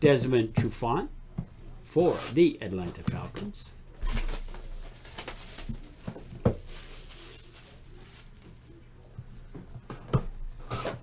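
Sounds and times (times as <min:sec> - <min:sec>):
cards rustling: 0:02.9 - 0:08.6.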